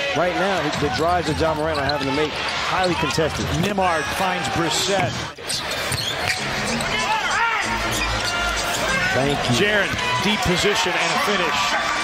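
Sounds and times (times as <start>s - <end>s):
arena music: 5.6s - 12.0s.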